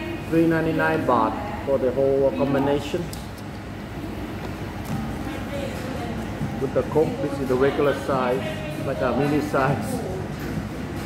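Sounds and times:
restaurant background rumble: 0.0 - 11.0.

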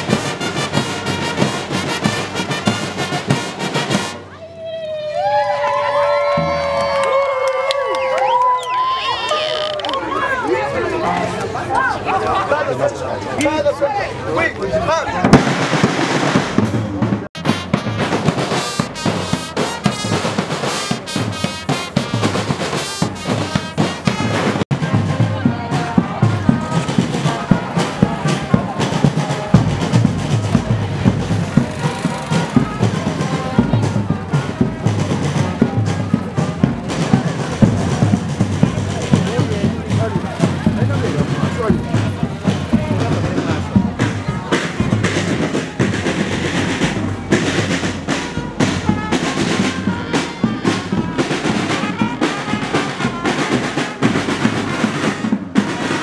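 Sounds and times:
music with fast drumming: 0.0 - 4.3, 15.2 - 56.0
voices in music: 16.3 - 56.0.

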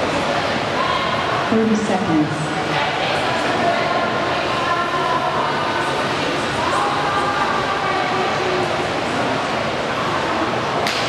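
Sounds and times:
indoor pool hall background noise: 0.0 - 11.0.

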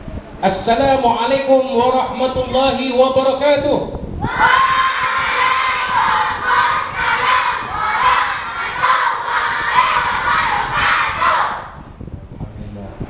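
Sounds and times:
crowd of children shouting: 4.2 - 11.8.

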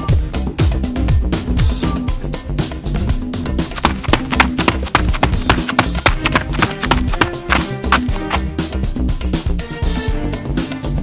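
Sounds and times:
upbeat background music: 0.0 - 11.0.

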